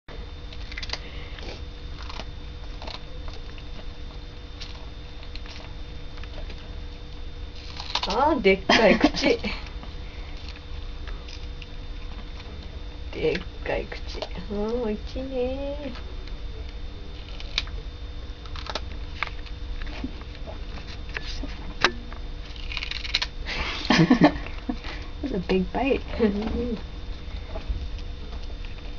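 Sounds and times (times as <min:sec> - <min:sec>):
low background hum: 0:00.1 - 0:28.9
cat chewing cucumber crunches: 0:00.5 - 0:04.0, 0:07.5 - 0:08.2
cat crunching cucumber: 0:00.5 - 0:04.0, 0:07.5 - 0:08.2, 0:17.1 - 0:17.7, 0:18.4 - 0:21.0, 0:22.4 - 0:24.0.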